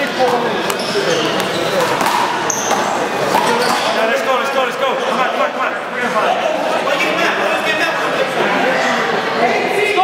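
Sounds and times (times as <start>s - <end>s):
men talking: 0.0s - 10.0s.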